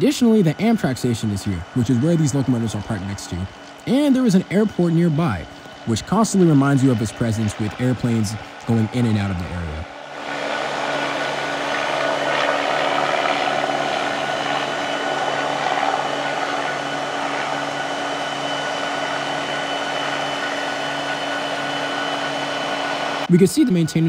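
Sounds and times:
diesel locomotives idling: 0.0 - 23.4
jet airplane passing overhead: 0.0 - 24.0.

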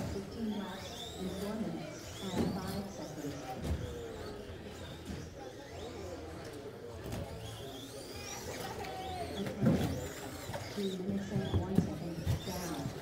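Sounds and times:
murmur of voices: 0.0 - 13.0
rc truck motors whining: 0.0 - 13.0.

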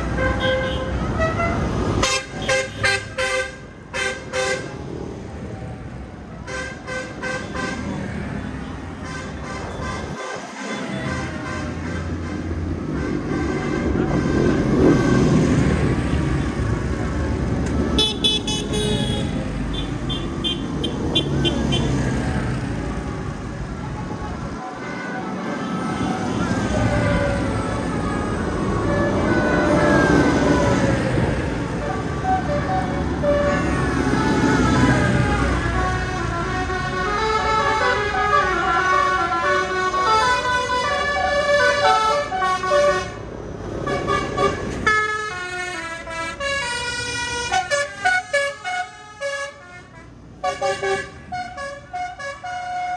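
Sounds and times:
tractor diesel engines passing: 0.0 - 52.9.

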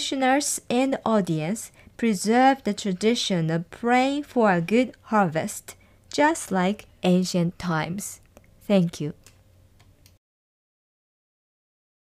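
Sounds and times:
woman speaking: 0.0 - 9.2.

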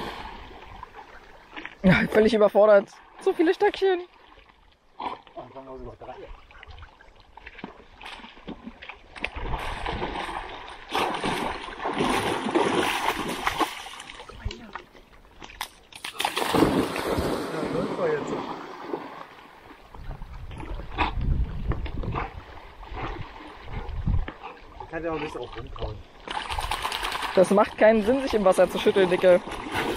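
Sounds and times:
dog splashing in water: 6.6 - 14.8, 15.4 - 19.2, 26.2 - 29.9.

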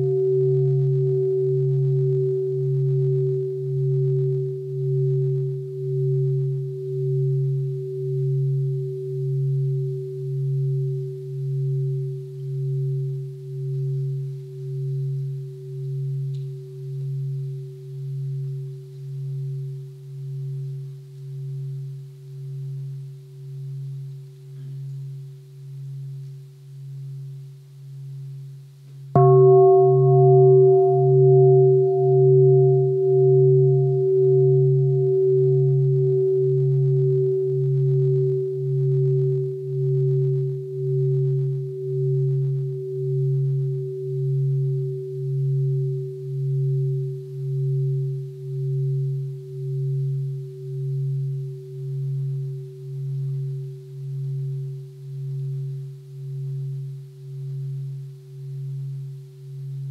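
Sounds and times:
meditation bowl bell ringing: 0.0 - 59.9.

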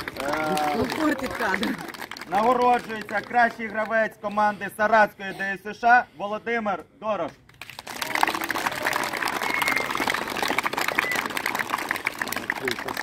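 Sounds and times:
crowd applauding: 0.0 - 4.1, 7.6 - 13.0.

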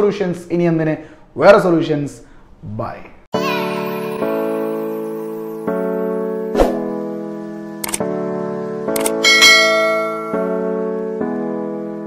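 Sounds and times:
bright bell chime: 3.4 - 6.4, 9.2 - 10.6
short clicks: 7.8 - 8.1, 8.9 - 9.2.

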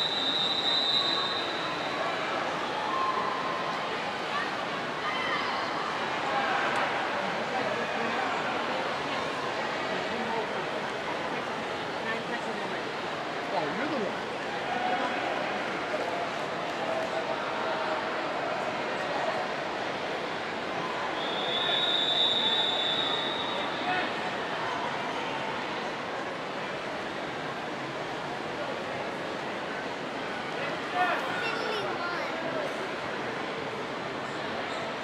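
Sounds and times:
crowd talking and cheering: 0.0 - 35.0.

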